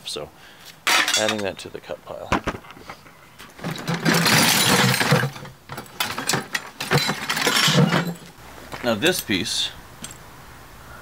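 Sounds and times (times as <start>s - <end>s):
metal pieces clanking: 0.9s - 1.5s, 3.4s - 8.4s
metal pipe fittings clattering: 0.9s - 1.6s, 3.4s - 8.3s.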